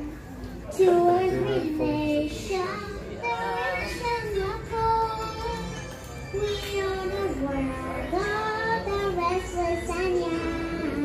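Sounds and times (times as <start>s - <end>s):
girl singing into microphone: 0.0s - 11.0s.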